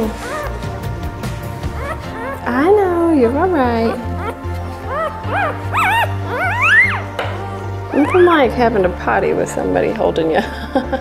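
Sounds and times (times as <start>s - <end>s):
puppy squealing: 0.0s - 0.7s, 1.7s - 7.1s, 7.9s - 8.4s
background music: 0.0s - 11.0s.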